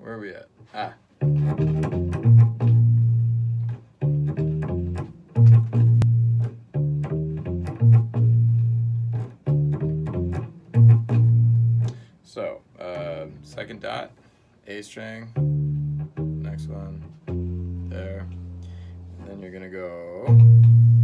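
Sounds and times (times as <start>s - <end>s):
electric bass guitar riff: 1.2s - 12.1s, 12.8s - 13.9s, 15.3s - 21.0s.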